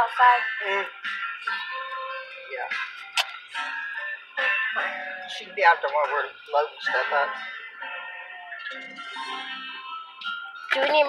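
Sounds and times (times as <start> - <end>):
country-pop song from car stereo: 0.0 - 11.0.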